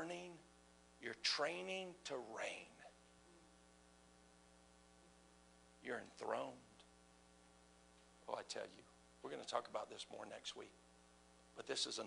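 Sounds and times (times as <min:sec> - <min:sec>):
man's voice: 0:00.0 - 0:00.4, 0:01.0 - 0:02.9, 0:05.8 - 0:06.8
faint electrical hum: 0:00.0 - 0:12.0.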